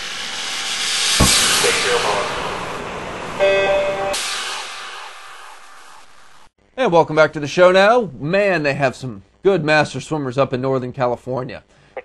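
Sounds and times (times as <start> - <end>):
whoosh: 0.8 - 3.4.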